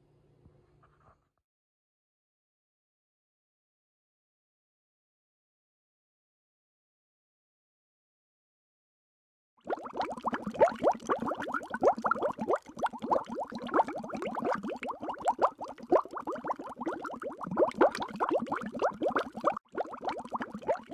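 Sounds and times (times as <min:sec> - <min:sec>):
quick rising bubbling bloops: 0:09.6 - 0:20.9.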